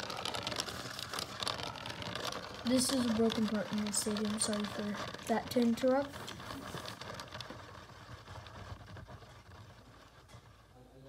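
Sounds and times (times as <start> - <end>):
spinning top whirring hiss: 0.0 - 11.0.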